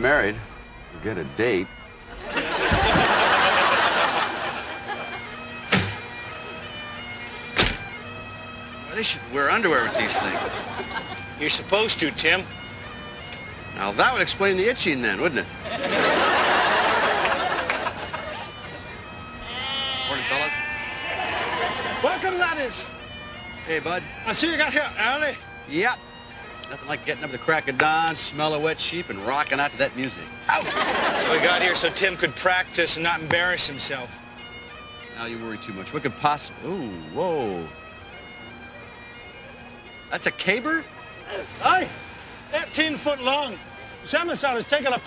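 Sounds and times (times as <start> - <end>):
bagpipe music with drone: 0.0 - 45.0
sheep bleating: 19.5 - 21.7.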